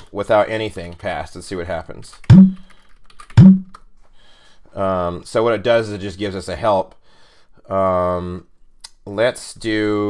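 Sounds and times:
computer keyboard typing: 0:02.2 - 0:03.6
heavy keystroke thumps: 0:03.3 - 0:03.8.

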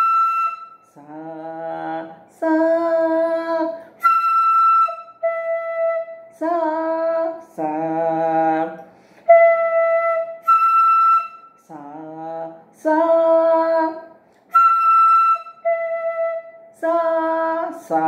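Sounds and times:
bamboo flute notes: 0:00.0 - 0:01.9, 0:04.0 - 0:07.2, 0:09.2 - 0:12.0, 0:14.5 - 0:18.0
woman singing: 0:00.9 - 0:03.9, 0:06.3 - 0:08.8, 0:11.6 - 0:14.1, 0:16.8 - 0:18.0.

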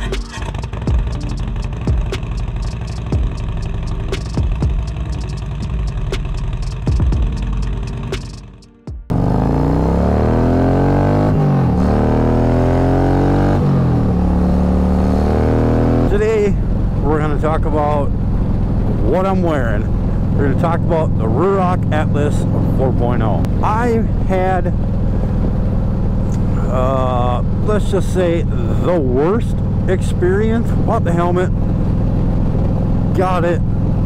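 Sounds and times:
intro music with steady beat: 0:00.0 - 0:09.1
motorcycle engine accelerating: 0:00.0 - 0:34.0.

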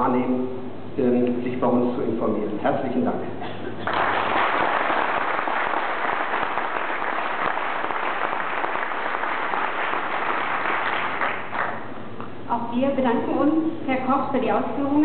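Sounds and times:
audience applauding: 0:03.8 - 0:11.9.

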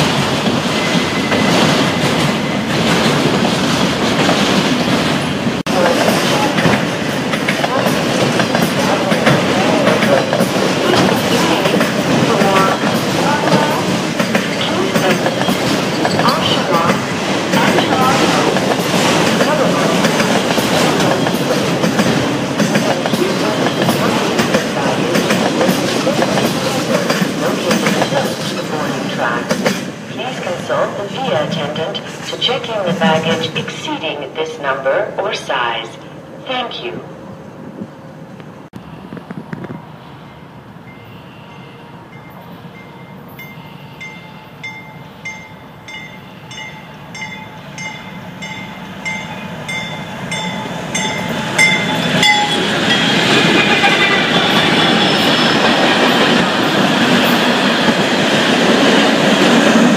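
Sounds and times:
clickety-clack over rail joints: 0:00.0 - 0:33.9
train wheels rumbling on rail: 0:00.0 - 0:34.5, 0:37.6 - 0:59.9.

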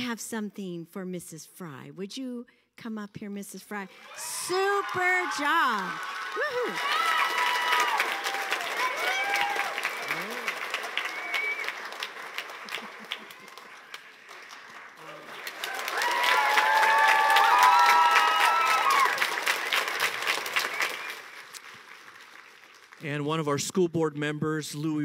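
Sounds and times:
audience applauding: 0:03.9 - 0:23.5
voices calling out and whooping: 0:04.1 - 0:10.6.

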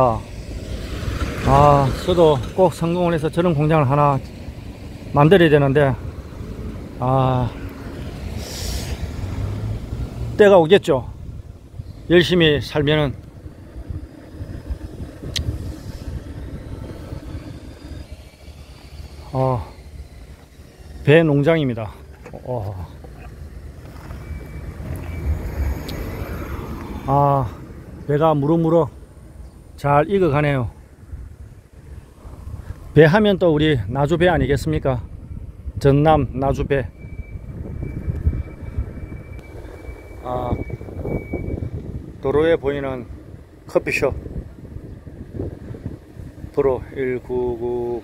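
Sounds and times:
road rumble: 0:00.0 - 0:48.0
car driving interior rumble: 0:11.1 - 0:26.9
wind on microphone: 0:13.1 - 0:18.5, 0:31.0 - 0:33.0, 0:34.2 - 0:42.3, 0:43.0 - 0:46.6.

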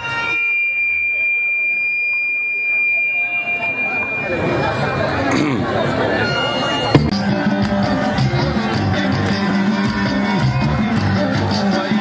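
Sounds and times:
microphone feedback ringing: 0:00.0 - 0:05.2, 0:06.0 - 0:07.1.

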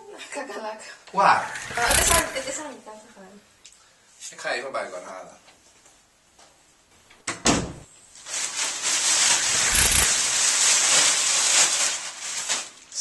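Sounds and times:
wooden door shutting: 0:07.2 - 0:07.9
loud steady hiss: 0:07.7 - 0:13.0.

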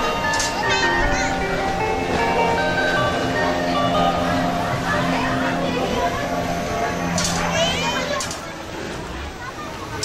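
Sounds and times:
crowd chattering: 0:00.0 - 0:10.0.

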